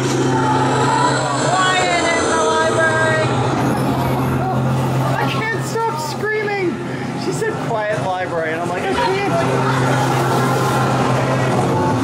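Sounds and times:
gliding unintelligible voices: 0.0 - 12.0
low droning hum: 0.0 - 12.0.

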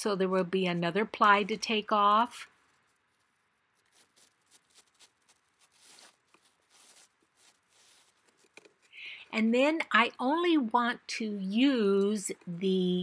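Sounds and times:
paper napkin rustling: 2.5 - 8.9.

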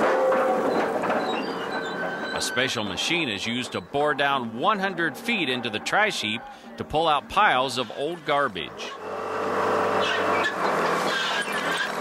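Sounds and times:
boring rig engine humming: 0.0 - 12.0.

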